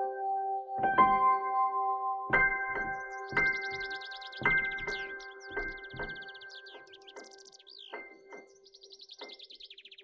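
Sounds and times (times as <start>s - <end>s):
songbird trills: 2.7s - 10.0s.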